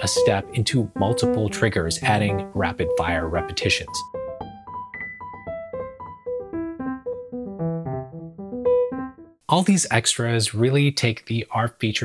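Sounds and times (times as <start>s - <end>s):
arpeggiated piano-like keyboard: 0.0s - 9.4s.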